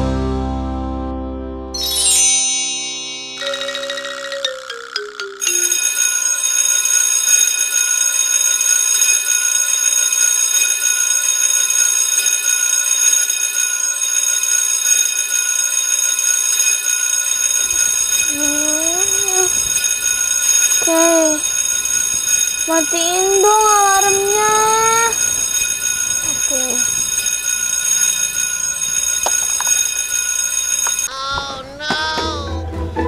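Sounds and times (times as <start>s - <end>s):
descending chime notes: 1.8s - 6.5s
alarm ringing loudly: 1.8s - 31.1s
girl groaning: 18.4s - 19.6s, 20.9s - 21.4s, 31.1s - 32.4s.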